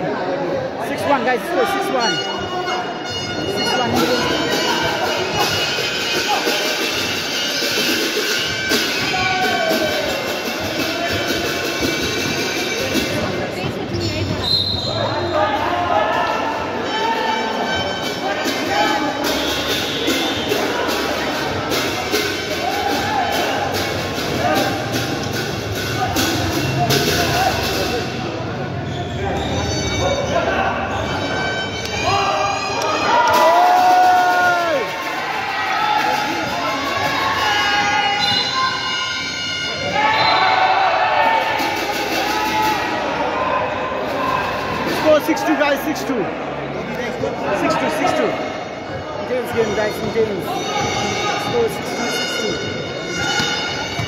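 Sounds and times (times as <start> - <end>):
voices echoing in hall: 0.0 - 54.0.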